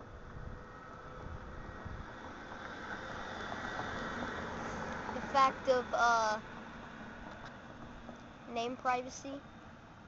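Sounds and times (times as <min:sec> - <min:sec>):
wind buffeting microphone: 0:00.0 - 0:04.0.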